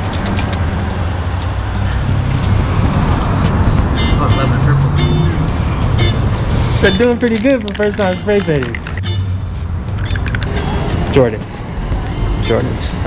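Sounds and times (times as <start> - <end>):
spray paint cans hissing: 0.0 - 12.1
street traffic rumble: 0.0 - 13.0
faint background music: 4.0 - 13.0.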